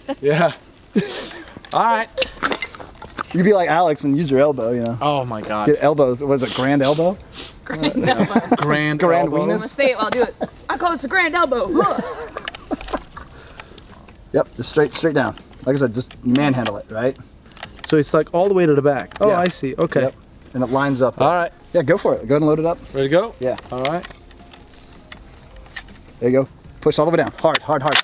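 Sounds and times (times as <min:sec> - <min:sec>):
person laughing: 0:00.0 - 0:01.6, 0:07.7 - 0:10.7, 0:11.7 - 0:13.4
rifle clip metallic clicks: 0:17.5 - 0:18.0, 0:27.4 - 0:28.0.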